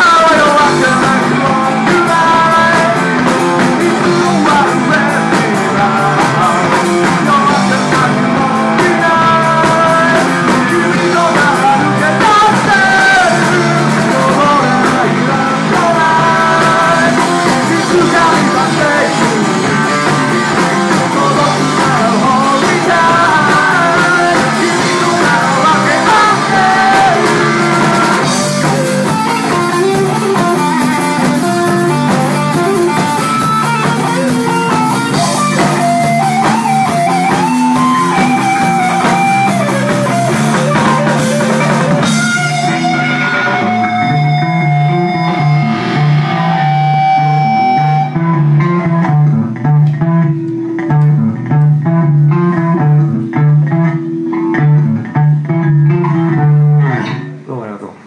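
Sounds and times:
electric guitar riff: 0:00.0 - 0:58.0
live rock band: 0:00.0 - 0:58.0.

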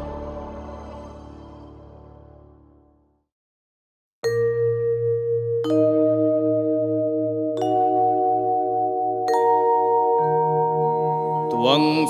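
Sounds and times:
sustained keyboard chord: 0:04.3 - 0:12.0
man chanting a hymn: 0:11.5 - 0:12.0.

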